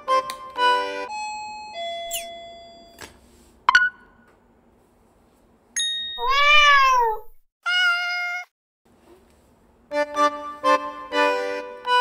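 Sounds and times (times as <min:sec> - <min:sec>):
cat meow: 0:06.2 - 0:08.5.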